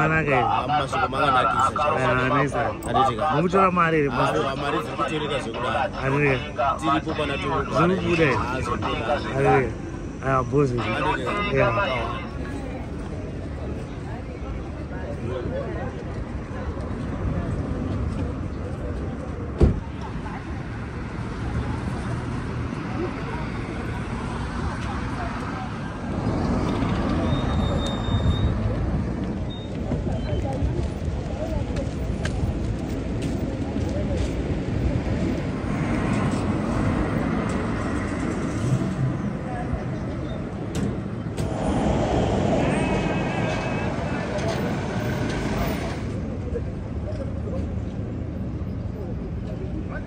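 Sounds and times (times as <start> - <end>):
road traffic rumble: 0.0 - 50.0
voices in background: 0.0 - 50.0.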